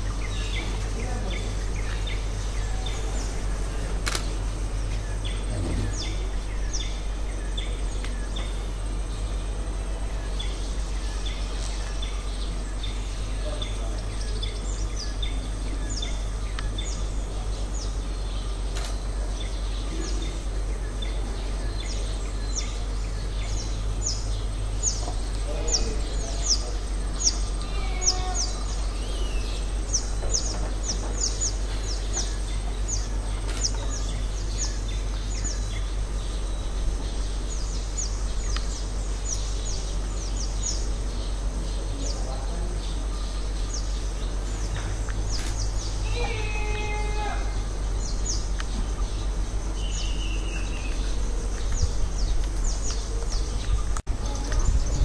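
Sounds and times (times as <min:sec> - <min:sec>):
bird chirping: 0:00.0 - 0:55.0
steady low rumble: 0:00.0 - 0:55.0.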